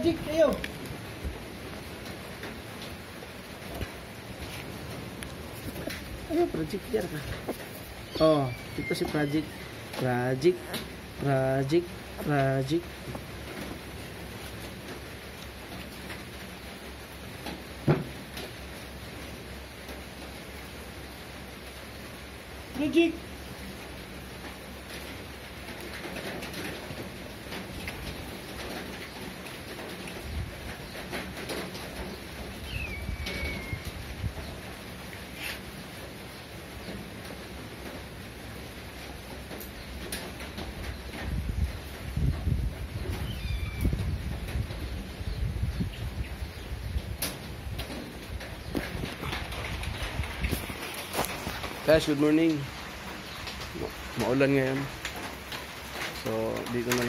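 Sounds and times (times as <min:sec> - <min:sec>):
sneaker footsteps on concrete: 0:03.8 - 0:08.0
bird cooing: 0:32.7 - 0:33.9.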